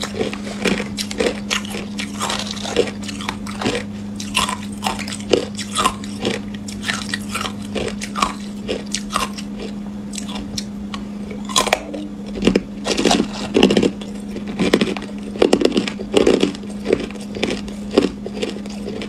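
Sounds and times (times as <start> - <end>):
ice crunching while chewed: 0.0 - 19.0
low steady hum: 0.0 - 19.0.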